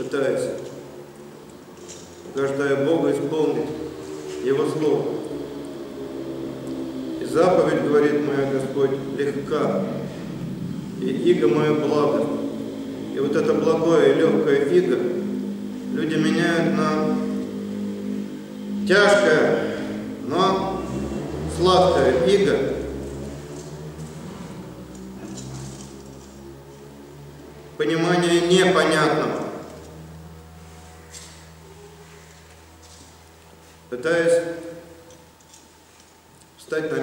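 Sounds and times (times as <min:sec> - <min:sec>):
steady low hum: 0:00.0 - 0:37.0
man speaking: 0:02.3 - 0:05.2, 0:07.2 - 0:10.0, 0:10.9 - 0:17.4, 0:18.7 - 0:23.0, 0:27.8 - 0:29.6, 0:33.9 - 0:34.8, 0:36.6 - 0:37.0.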